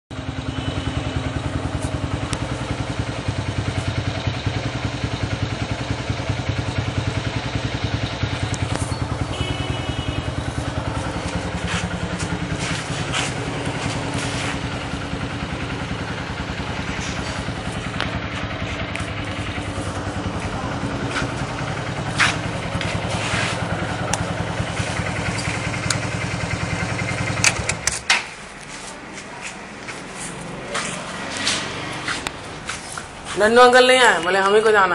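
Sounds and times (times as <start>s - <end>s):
motorcycle engine idling: 0.1s - 34.9s.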